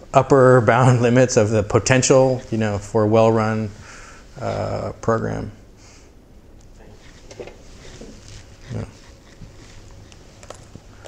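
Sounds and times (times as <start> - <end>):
faint rustles: 5.8 - 11.0.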